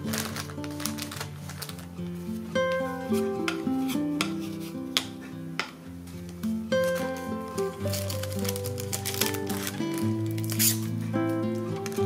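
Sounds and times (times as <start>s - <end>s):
plastic packaging crinkling: 0.0s - 4.8s, 6.2s - 12.0s
relaxing guitar music: 0.0s - 12.0s.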